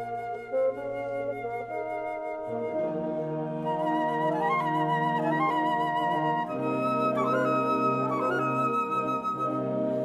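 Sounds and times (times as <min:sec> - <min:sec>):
bassoon: 0:00.0 - 0:10.0
flute: 0:00.0 - 0:10.0.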